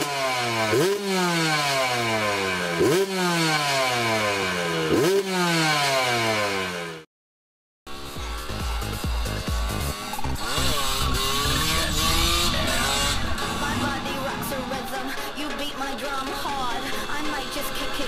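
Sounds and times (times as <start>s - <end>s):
dirt bike engine revving: 0.0s - 7.1s, 7.9s - 18.0s
music with steady beat: 7.9s - 10.6s, 14.8s - 18.0s.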